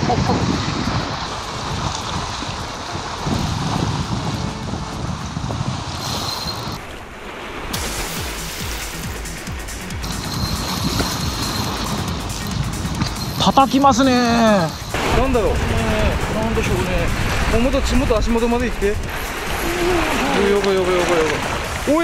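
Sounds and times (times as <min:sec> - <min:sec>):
wind rumbling on microphone: 0:00.0 - 0:07.8, 0:09.9 - 0:22.0
surf washing over rocks: 0:00.0 - 0:22.0.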